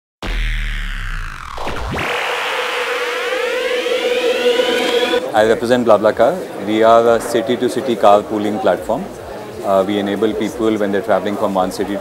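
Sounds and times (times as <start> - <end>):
steady held electronic tone: 0.2 - 5.3
tones sweeping upward: 0.2 - 5.3.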